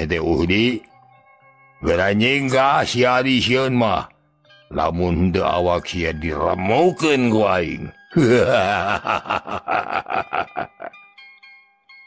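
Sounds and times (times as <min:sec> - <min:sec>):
faint background music: 0:00.0 - 0:12.0
man laughing: 0:08.2 - 0:11.0.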